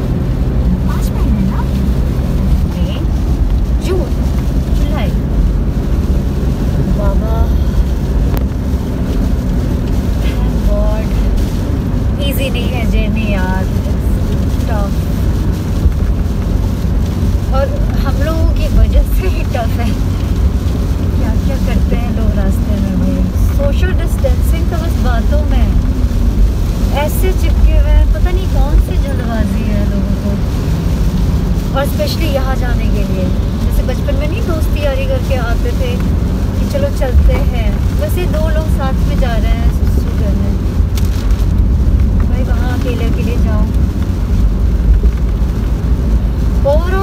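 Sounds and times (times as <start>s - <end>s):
moving car rumble: 0.0s - 47.0s
woman's voice: 0.7s - 3.1s, 3.8s - 5.2s, 6.8s - 7.9s, 10.2s - 11.4s, 12.2s - 15.0s, 17.5s - 20.4s, 21.1s - 26.0s, 26.9s - 30.5s, 31.7s - 40.7s, 42.2s - 43.8s, 46.6s - 47.0s.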